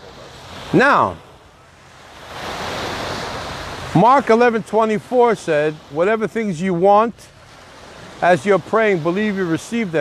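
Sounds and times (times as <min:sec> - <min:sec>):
ocean wave washing: 0:00.0 - 0:10.0.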